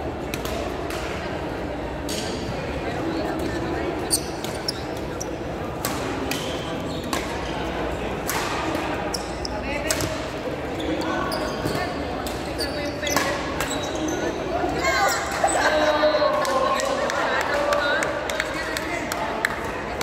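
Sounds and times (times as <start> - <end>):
echoing background chatter: 0.0 - 20.0
shoe squeaks on court floor: 4.0 - 5.5, 9.1 - 9.7, 10.7 - 14.4
racket hitting shuttlecock: 5.8 - 7.5, 8.2 - 9.0.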